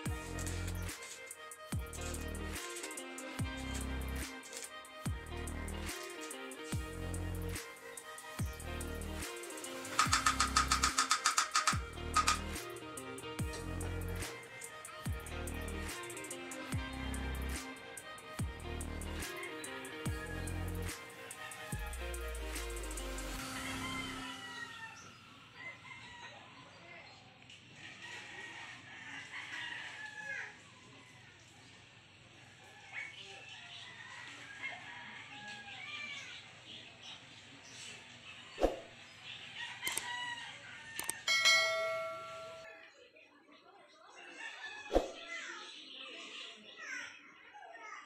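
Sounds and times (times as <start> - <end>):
rooster crowing: 23.4 - 26.6, 27.8 - 31.0, 32.6 - 36.0, 39.6 - 42.7.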